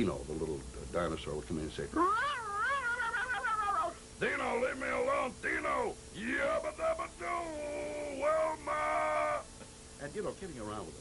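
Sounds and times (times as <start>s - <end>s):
man making whining cry: 2.0s - 4.0s, 6.2s - 9.5s.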